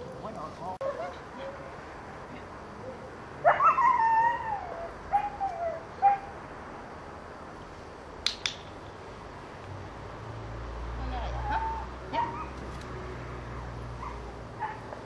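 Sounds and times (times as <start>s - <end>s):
training clicker snapping: 8.2s - 8.7s.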